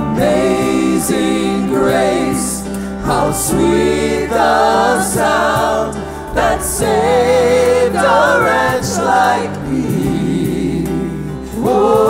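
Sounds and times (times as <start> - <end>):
group singing worship song: 0.0 - 12.0
instrumental backing: 0.0 - 12.0.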